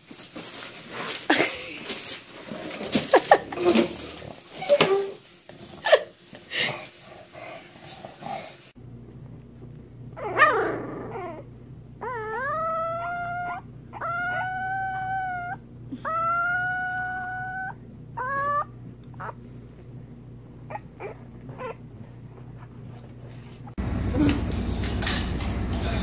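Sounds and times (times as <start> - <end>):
puppy howling and squealing: 10.1 - 19.4, 20.7 - 21.8.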